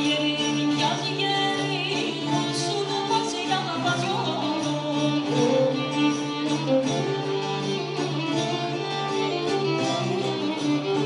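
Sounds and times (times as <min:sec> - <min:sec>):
bowed strings: 0:00.0 - 0:11.0.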